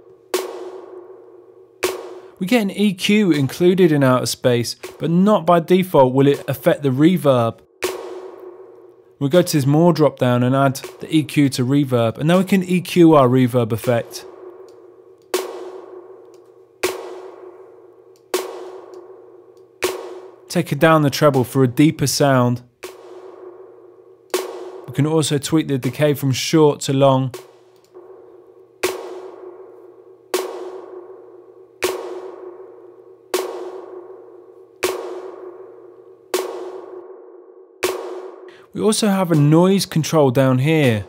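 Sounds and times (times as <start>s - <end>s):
snare drum hits with spring reverb: 0.4s - 1.0s, 1.8s - 2.4s, 4.8s - 5.2s, 7.8s - 8.6s, 10.8s - 11.4s, 15.4s - 16.0s, 16.8s - 17.6s, 18.3s - 19.0s, 19.8s - 20.6s, 22.8s - 23.5s, 24.3s - 24.9s, 27.3s - 27.8s, 28.8s - 29.6s, 30.4s - 31.0s, 31.8s - 32.8s, 33.4s - 34.0s, 34.8s - 35.6s, 36.4s - 37.0s, 37.8s - 38.4s.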